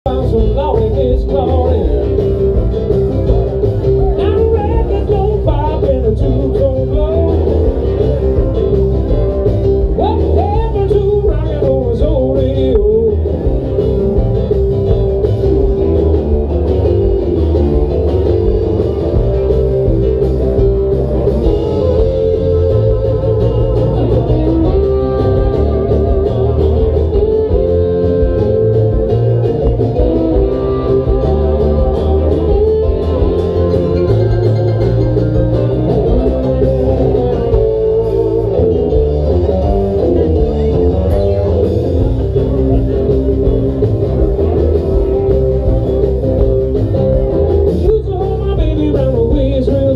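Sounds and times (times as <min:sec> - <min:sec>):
live band playing: 0:00.0 - 0:49.9
person singing: 0:00.1 - 0:02.4, 0:04.0 - 0:08.4, 0:09.9 - 0:13.8, 0:47.4 - 0:49.9.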